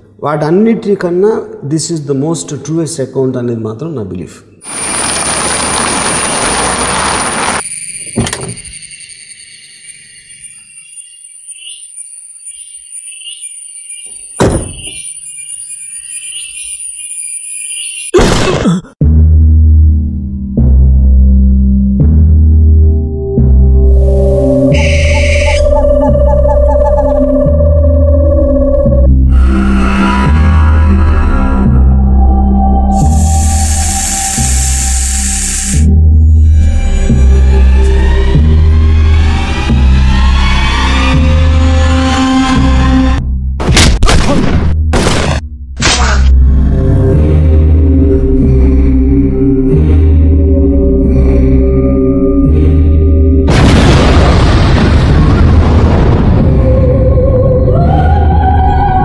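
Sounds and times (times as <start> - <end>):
faint repeating chirps: 7.6 - 18.2
deep droning bass music: 19.0 - 59.0
eerie suspense score: 19.1 - 59.0
loud steady hiss: 33.0 - 35.9.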